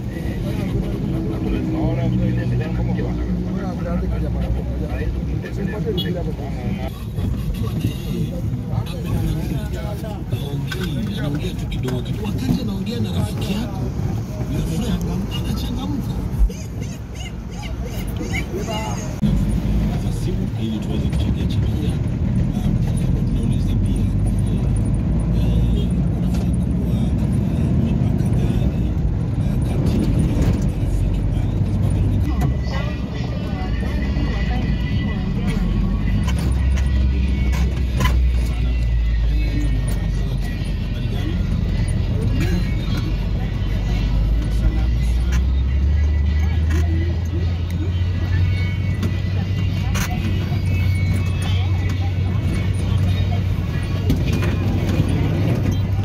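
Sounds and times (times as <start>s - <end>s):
vehicle engine and tyres rumbling: 0.0s - 56.0s
voices: 0.0s - 56.0s
music: 32.6s - 55.7s.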